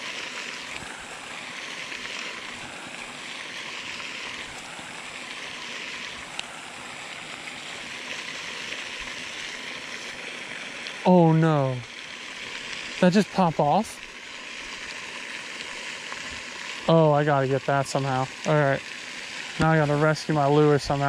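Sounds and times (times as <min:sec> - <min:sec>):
fountain spray splashing: 0:00.0 - 0:21.0.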